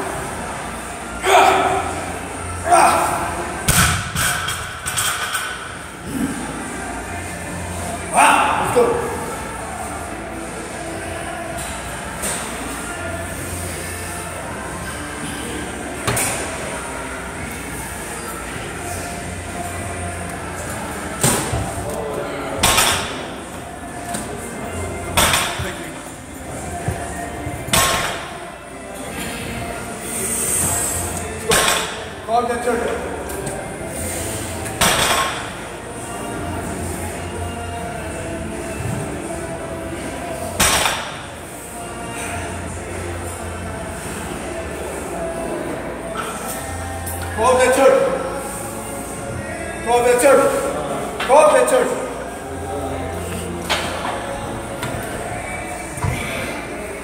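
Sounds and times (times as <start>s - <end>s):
background music: 0.0s - 57.0s
gym hall background noise: 0.0s - 57.0s.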